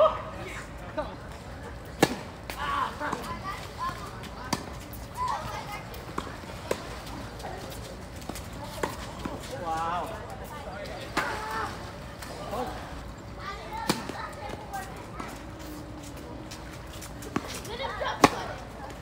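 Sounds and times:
players' voices: 0.0 - 19.0
tennis racket hitting ball: 17.2 - 18.6.

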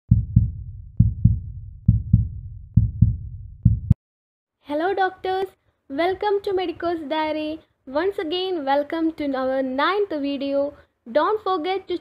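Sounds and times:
heartbeat thumps: 0.1 - 4.0.

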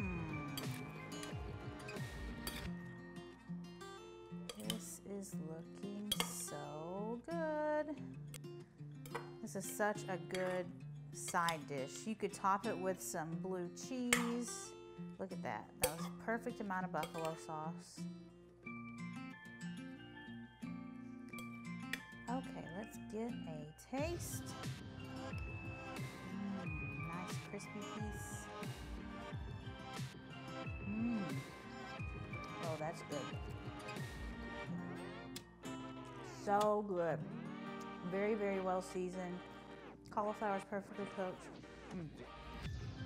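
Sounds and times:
background music: 0.0 - 43.0
metal tongs clinking on glass bowl: 4.5 - 4.9, 6.1 - 6.5, 10.3 - 10.6, 15.8 - 16.1, 17.0 - 17.4.

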